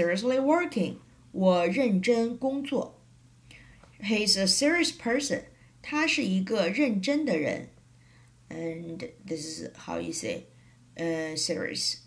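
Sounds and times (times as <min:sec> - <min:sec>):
woman speaking: 0:00.0 - 0:03.0, 0:04.0 - 0:07.8, 0:08.5 - 0:12.0.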